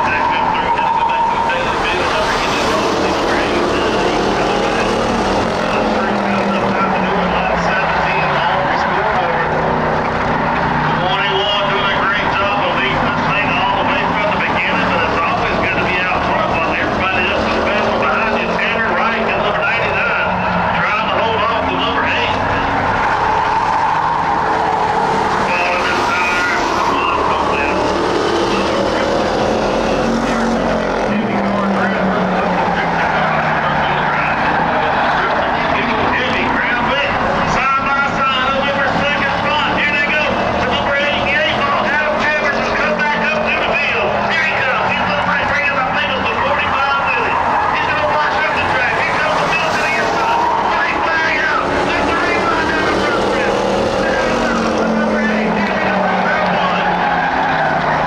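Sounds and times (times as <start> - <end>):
stock car engines racing: 0.0 - 58.0.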